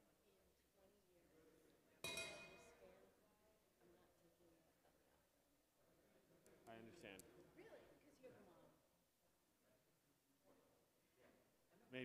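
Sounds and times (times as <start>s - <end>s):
sharp clink of hard object: 2.0s - 2.8s.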